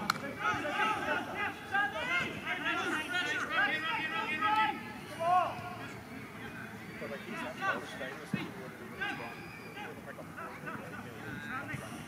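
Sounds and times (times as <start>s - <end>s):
men shouting and calling: 0.2s - 5.8s.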